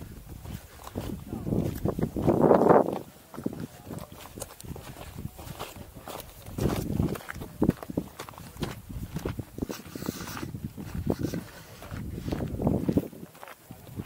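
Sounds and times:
footsteps on gravel: 0.0 - 14.0.

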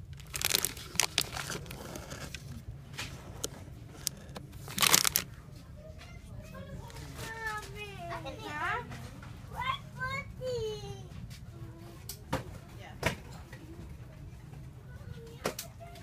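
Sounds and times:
crinkling handling noise: 0.0 - 9.4.

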